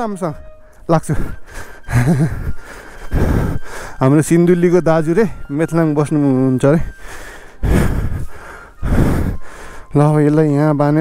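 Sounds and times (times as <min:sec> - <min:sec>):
breathy gusts at microphone: 0:07.0 - 0:09.9.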